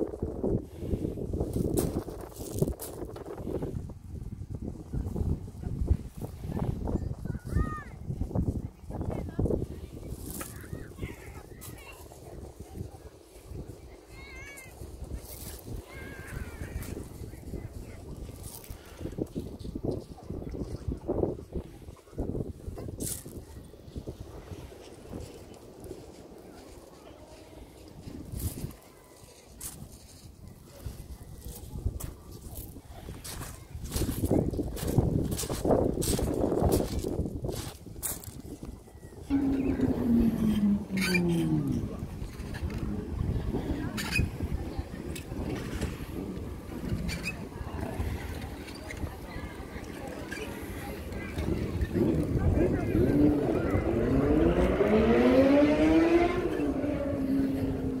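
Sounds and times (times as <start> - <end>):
wind rumbling on microphone: 0.0 - 58.0
footsteps crunching on shingle: 32.0 - 38.6.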